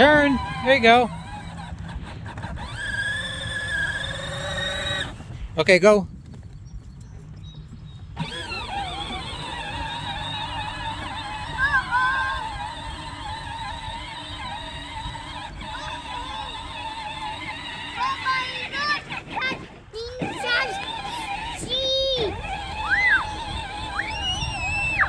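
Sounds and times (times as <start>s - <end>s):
electric toy vehicle motor whining: 0.0s - 5.4s, 8.0s - 25.0s
wheels rumbling on grass: 0.0s - 25.0s.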